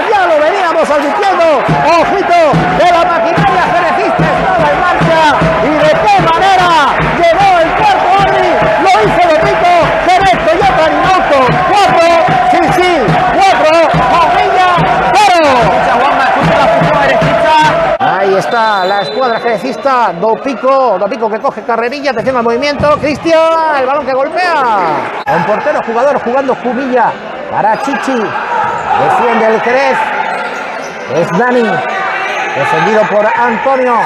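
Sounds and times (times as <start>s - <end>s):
excited shouting voices: 0.0s - 18.4s, 27.8s - 30.3s.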